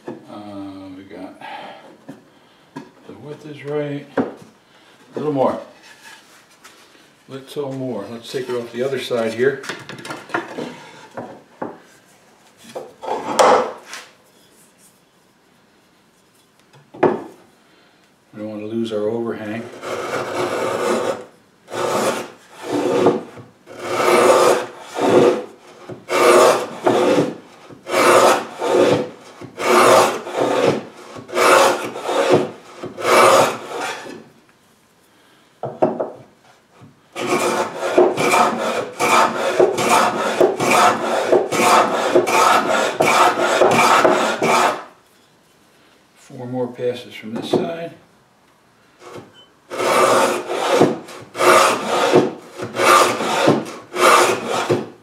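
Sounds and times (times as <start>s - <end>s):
plane shaving wood: 19.6s - 34.2s, 37.2s - 44.9s, 49.0s - 54.9s.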